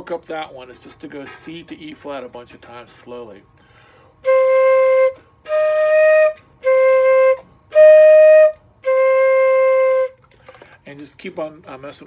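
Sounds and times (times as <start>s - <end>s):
flute held notes: 3.8s - 10.2s.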